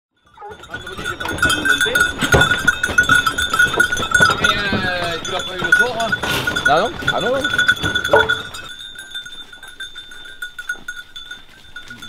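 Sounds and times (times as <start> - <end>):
steady high ringing tone: 0.2 - 12.0
hounds whining and yelping: 0.3 - 5.2, 6.2 - 8.7.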